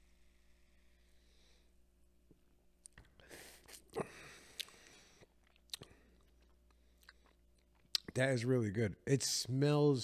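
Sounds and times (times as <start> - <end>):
lip smacks: 2.8 - 8.2.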